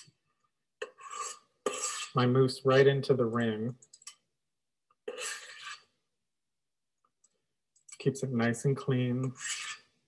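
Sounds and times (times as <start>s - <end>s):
metal scoop scraping a bowl: 0.8s - 2.3s, 5.1s - 5.9s, 9.2s - 9.9s.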